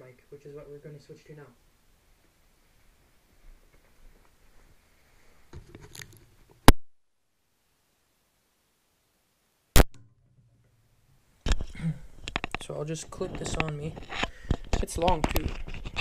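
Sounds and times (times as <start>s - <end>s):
close rustling of microphone: 2.1s - 6.7s, 11.4s - 16.0s
microphone cable handling noise: 5.4s - 6.8s, 11.4s - 16.0s.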